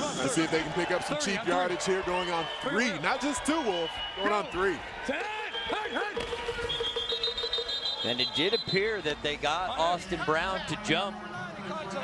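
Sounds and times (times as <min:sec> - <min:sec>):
referee's whistle: 0:02.2 - 0:03.0, 0:03.6 - 0:09.0.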